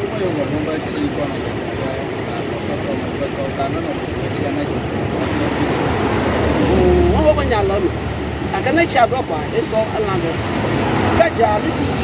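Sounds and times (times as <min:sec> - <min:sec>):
steady low rumble: 0:01.3 - 0:09.4.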